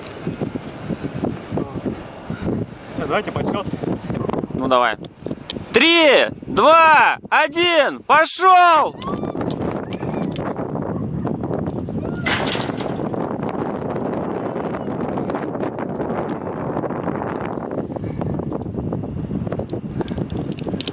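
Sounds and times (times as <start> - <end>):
wind buffeting microphone: 0.0 - 20.9.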